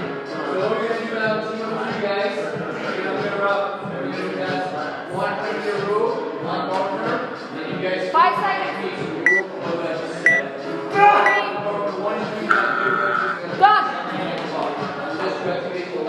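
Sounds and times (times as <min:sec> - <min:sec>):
music in a gym: 0:00.0 - 0:16.0.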